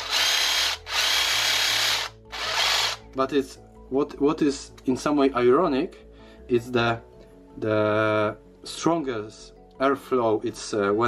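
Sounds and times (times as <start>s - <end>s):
jigsaw motor whining and rattling: 0.0s - 3.0s.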